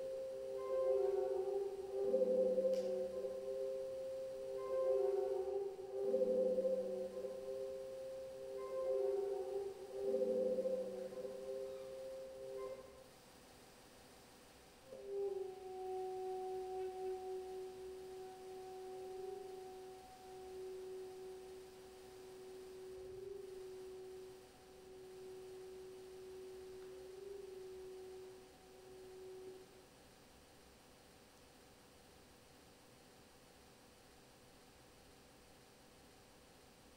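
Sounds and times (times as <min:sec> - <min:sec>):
saxophone sustained notes: 0:00.0 - 0:13.1, 0:14.9 - 0:29.9.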